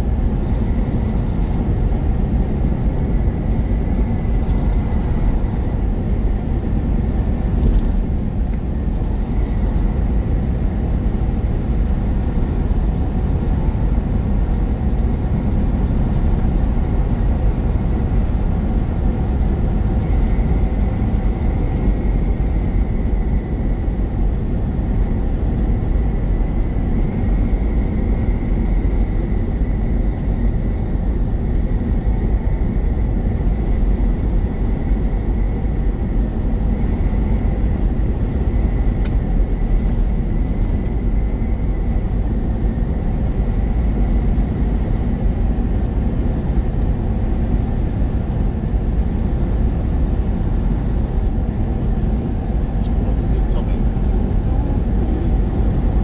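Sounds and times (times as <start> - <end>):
truck engine and tyre rumble: 0.0 - 56.0.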